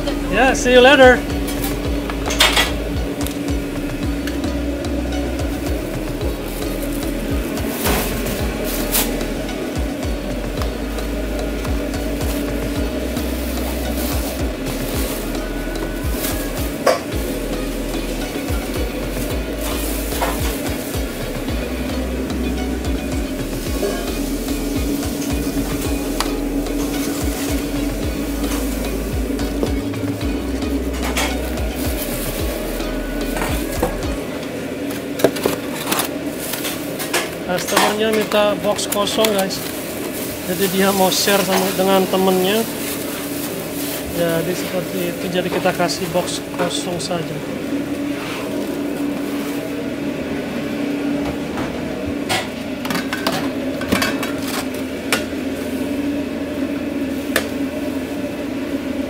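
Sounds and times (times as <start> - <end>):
food sizzling: 0.0 - 51.2
steady hum: 0.0 - 59.0
utensils and dishes clattering: 1.1 - 47.4, 51.6 - 55.4.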